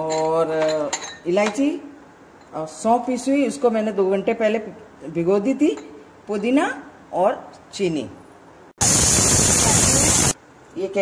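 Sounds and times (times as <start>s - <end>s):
pressure cooker whistle hissing: 8.8s - 10.4s.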